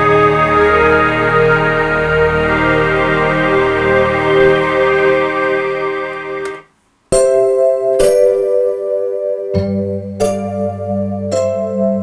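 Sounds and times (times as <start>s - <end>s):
synthesizer chords: 0.0s - 12.0s.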